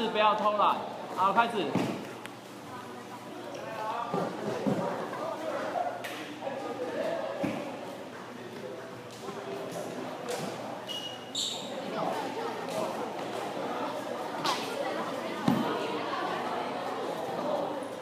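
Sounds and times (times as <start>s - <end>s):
teenagers chatting and calling: 0.0s - 18.0s
high squeak: 10.9s - 11.8s.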